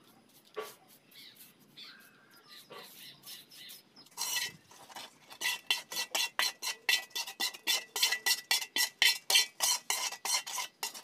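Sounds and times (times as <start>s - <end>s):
trowel scraping metal mortar pan: 3.0s - 11.0s.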